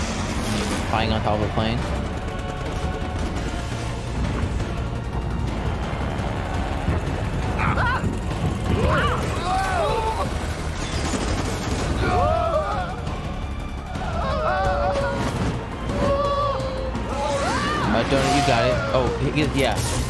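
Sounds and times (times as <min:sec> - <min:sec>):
action soundtrack music: 0:00.0 - 0:20.0.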